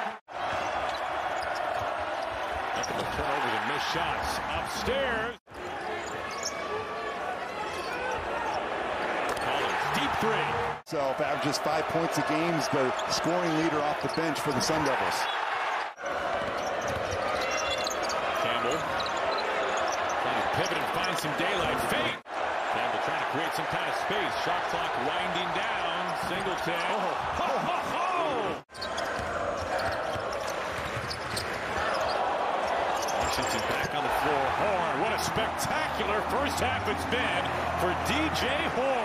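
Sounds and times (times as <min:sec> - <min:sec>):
arena crowd noise: 0:00.0 - 0:39.0.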